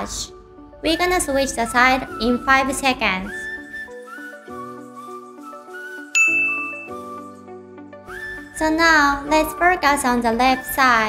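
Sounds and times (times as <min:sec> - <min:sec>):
soft background music: 0:00.0 - 0:11.0
bright ding: 0:06.2 - 0:07.1.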